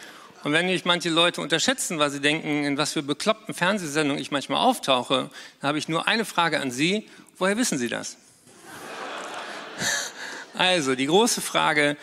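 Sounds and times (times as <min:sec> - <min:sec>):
audience laughing: 0:08.5 - 0:10.6.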